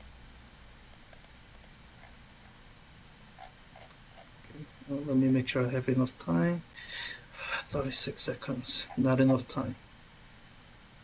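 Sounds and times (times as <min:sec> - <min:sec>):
computer mouse clicks: 0:00.9 - 0:01.8
man talking: 0:07.4 - 0:09.8.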